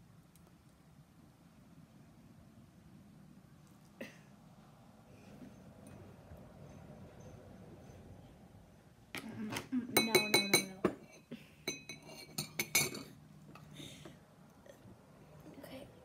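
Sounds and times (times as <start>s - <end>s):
glass clinking against glassware: 10.0s - 13.2s.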